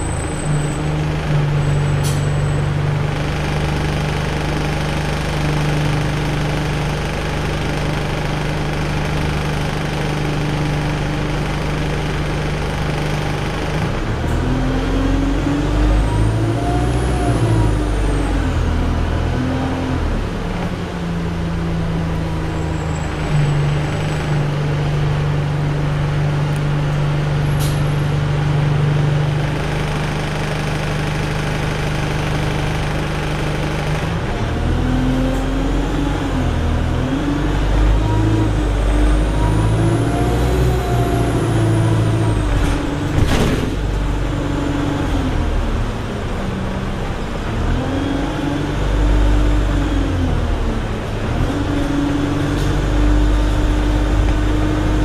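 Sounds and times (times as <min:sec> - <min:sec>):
bus diesel engine running: 0:00.0 - 0:55.0
road noise: 0:00.0 - 0:55.0.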